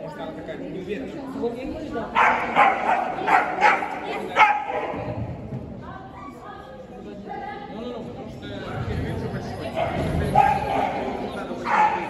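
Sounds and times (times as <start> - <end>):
dog barking: 2.2 - 5.0, 9.8 - 11.0, 11.6 - 12.0.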